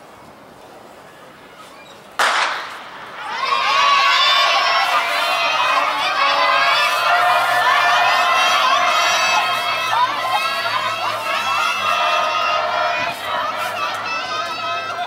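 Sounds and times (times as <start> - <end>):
starter's pistol shot: 2.2 - 2.8
crowd cheering and shouting: 2.6 - 15.0.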